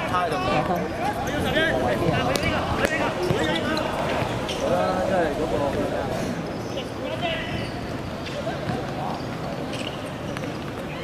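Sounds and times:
men talking: 0:00.0 - 0:07.7.

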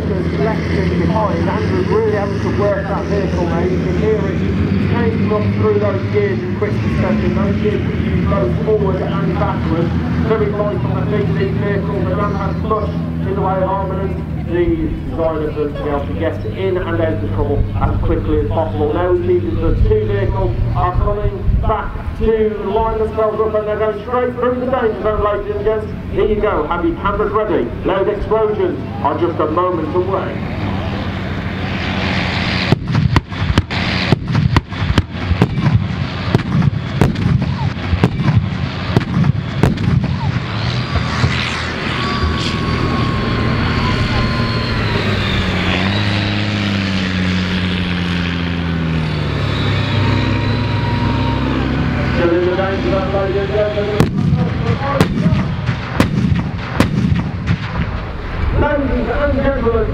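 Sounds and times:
vehicle engines revving: 0:00.0 - 0:59.9
pyrotechnic bangs: 0:32.6 - 0:41.5, 0:53.9 - 0:59.4.

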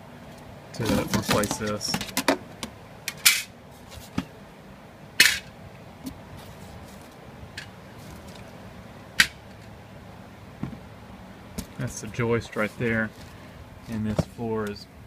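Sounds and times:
low steady background noise: 0:00.0 - 0:15.0
handling knocks and scrapes: 0:00.8 - 0:02.4, 0:03.1 - 0:04.4, 0:11.5 - 0:14.6.

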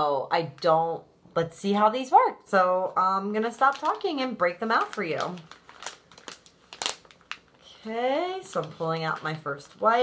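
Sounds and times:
wipes packet crinkling: 0:03.3 - 0:10.0.

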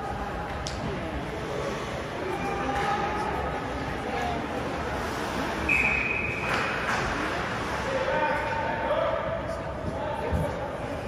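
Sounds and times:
arena background noise: 0:00.0 - 0:11.0.

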